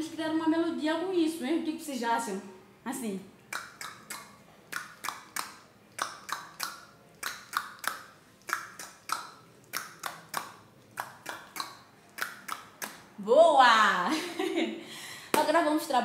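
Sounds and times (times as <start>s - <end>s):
rhythmic tongue clicks: 3.4s - 13.2s.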